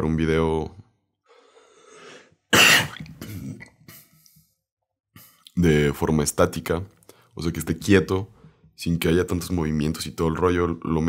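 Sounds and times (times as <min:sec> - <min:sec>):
man coughing: 0:02.5 - 0:04.1.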